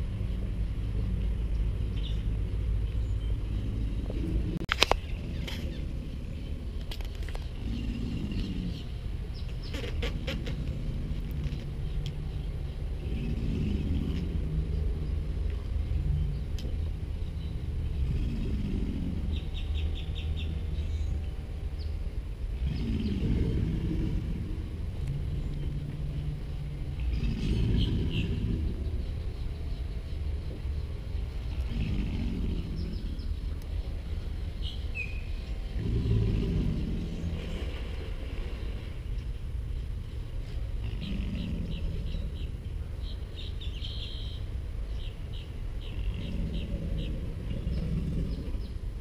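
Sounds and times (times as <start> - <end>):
steady low rumble: 0.0 - 49.0
birds chirping: 0.2 - 49.0
alligators bellowing: 1.1 - 49.0.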